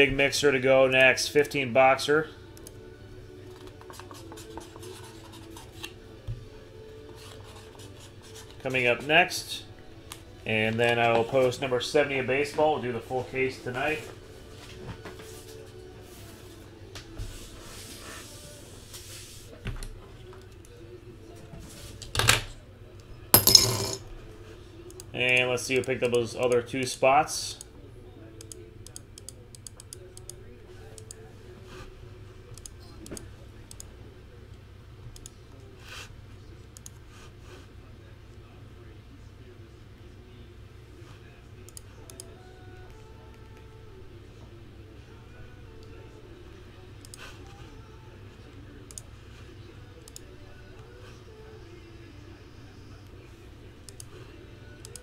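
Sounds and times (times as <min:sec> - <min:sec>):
computer mouse clicks: 0:35.2 - 0:35.4.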